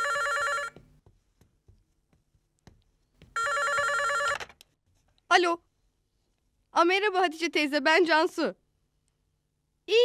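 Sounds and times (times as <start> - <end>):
telephone ringing: 0.0 - 0.8, 3.4 - 4.6.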